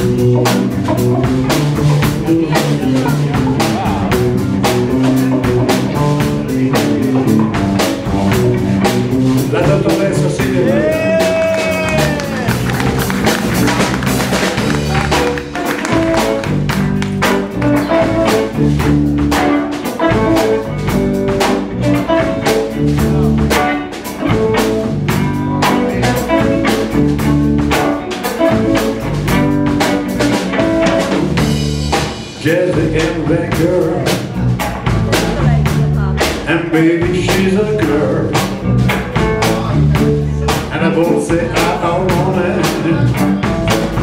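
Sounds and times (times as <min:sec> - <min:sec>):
bass guitar: 0:00.0 - 0:44.0
drum kit steady beat: 0:00.0 - 0:44.0
electric guitar: 0:00.0 - 0:44.0.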